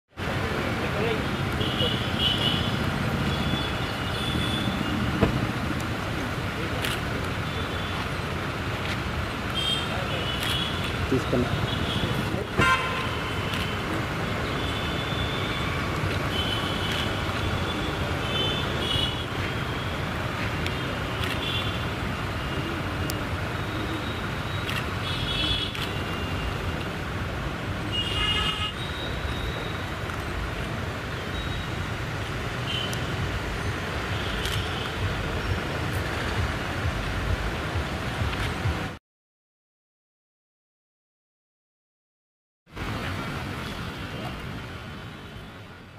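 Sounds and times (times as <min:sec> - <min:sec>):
road traffic rumble: 0:00.1 - 0:39.0, 0:42.7 - 0:45.9.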